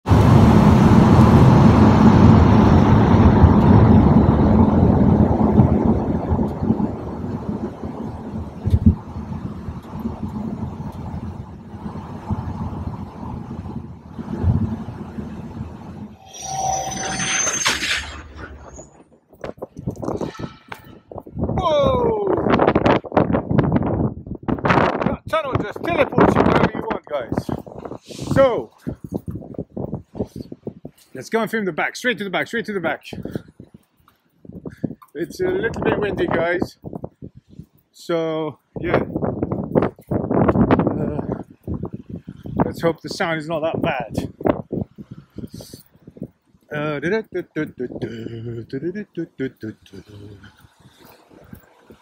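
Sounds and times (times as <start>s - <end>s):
vehicle road noise in tunnel: 0.1s - 16.6s
falling pitch glides: 16.1s - 19.0s.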